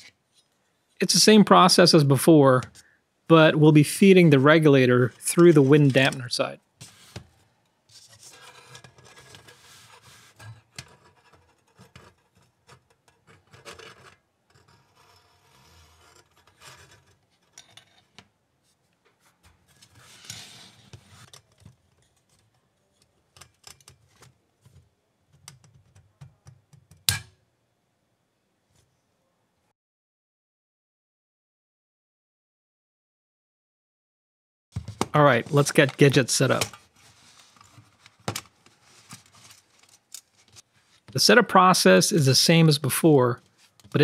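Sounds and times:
metal scraping and rubbing: 7.9 - 18.2.

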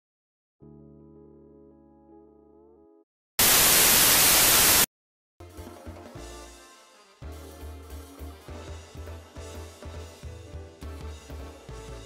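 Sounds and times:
music: 0.6 - 3.1, 5.4 - 12.0
white noise static burst: 3.4 - 4.9.

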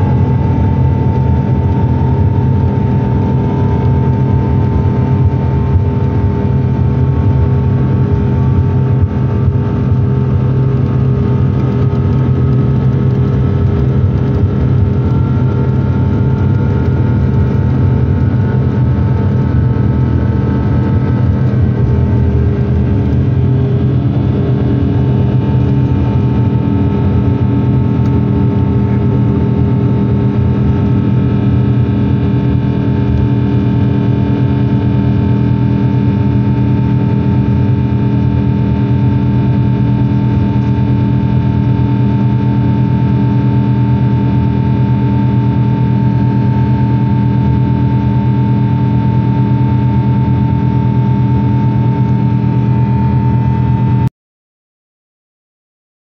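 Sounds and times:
high engine tones: 0.0 - 54.1
jet engines roaring: 0.0 - 54.1.

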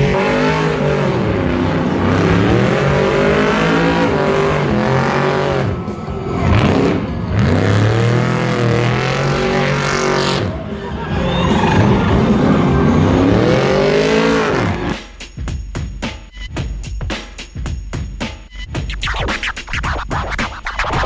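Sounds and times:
tires spinning on asphalt: 0.0 - 14.9
truck engine revving: 0.0 - 15.0.

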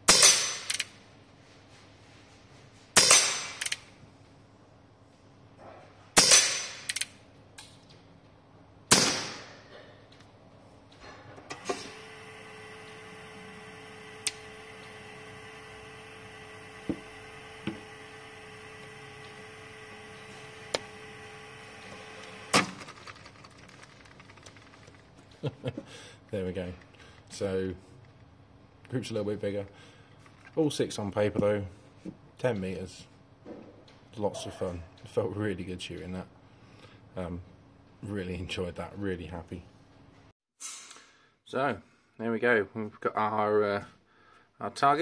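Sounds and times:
air revolver shots: 0.0 - 0.8, 3.0 - 3.7, 6.2 - 7.0, 8.9 - 9.7
sharp click: 0.2 - 0.9, 3.0 - 3.9, 6.2 - 7.8
target carrier motor hum: 11.5 - 25.1.

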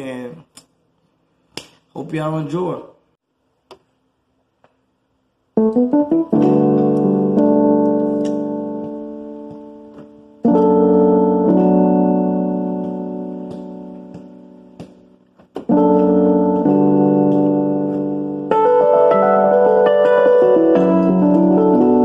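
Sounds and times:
slow piano chords: 5.6 - 22.0.

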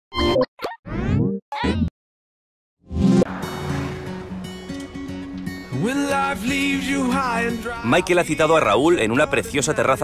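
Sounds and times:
wobbling rising swoop: 2.9 - 6.0.

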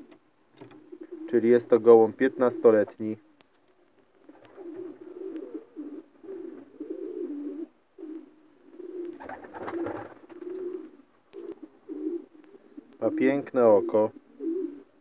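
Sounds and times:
pigeons cooing: 0.0 - 15.0.

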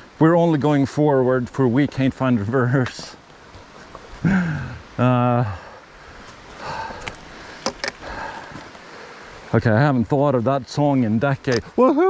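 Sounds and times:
trekking poles clicking on rock: 7.0 - 8.0.

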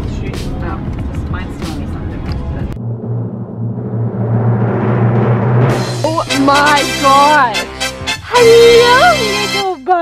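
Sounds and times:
timpani drum roll: 2.7 - 7.6
people talking: 6.0 - 7.6, 8.3 - 10.0.

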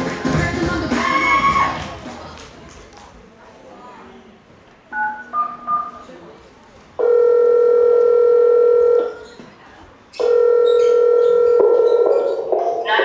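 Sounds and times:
dance music: 0.0 - 2.4
electronic telephone beep: 4.9 - 6.1, 7.0 - 9.2, 10.2 - 12.0.

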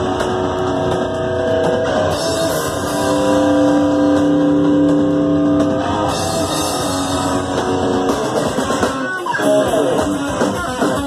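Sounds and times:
distorted electric guitar: 0.0 - 11.0
drums: 0.0 - 11.0.

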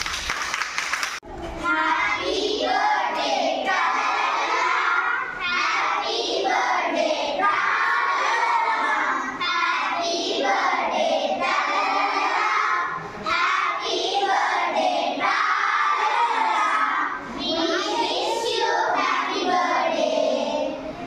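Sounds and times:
children singing together: 1.6 - 21.0.

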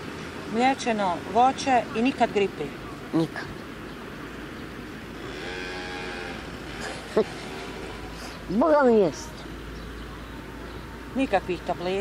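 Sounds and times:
engine hum: 0.0 - 12.0
outdoor background noise: 0.0 - 12.0.

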